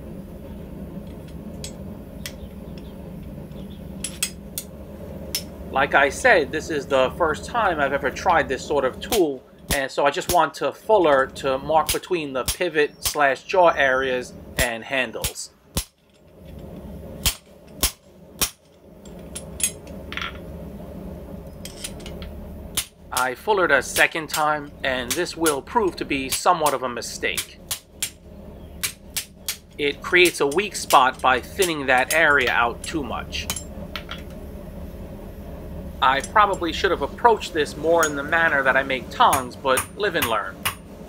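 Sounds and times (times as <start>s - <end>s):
workshop hum: 0.0s - 41.0s
hammer striking metal: 39.3s - 40.8s.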